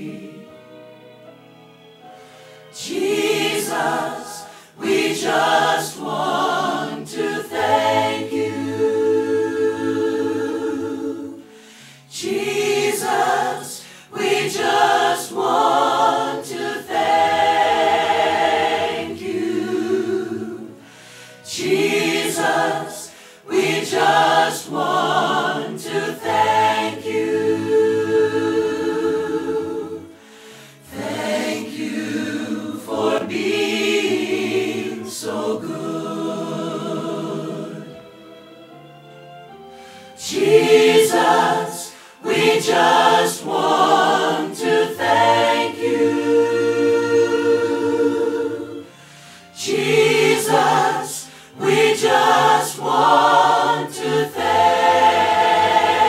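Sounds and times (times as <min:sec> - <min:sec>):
church choir singing: 0:00.0 - 0:56.0.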